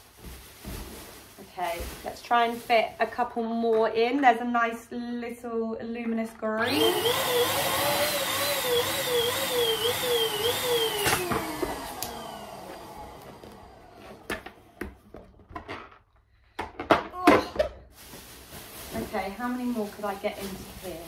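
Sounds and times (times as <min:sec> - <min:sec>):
electric balloon pump whining: 0:06.6 - 0:15.1.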